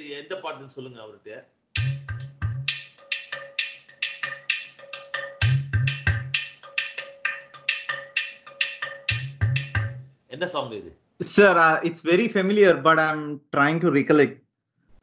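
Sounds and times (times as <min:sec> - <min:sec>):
deep drum hits: 0:01.8 - 0:02.8, 0:05.4 - 0:06.4, 0:09.1 - 0:10.0
dry knocking percussion: 0:01.8 - 0:10.1.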